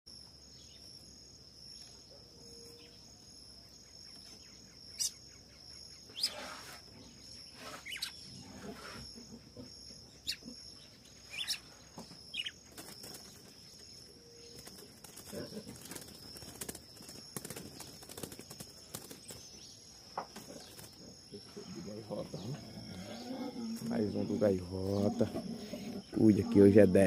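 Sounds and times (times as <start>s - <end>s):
high insect drone: 0.1s - 27.0s.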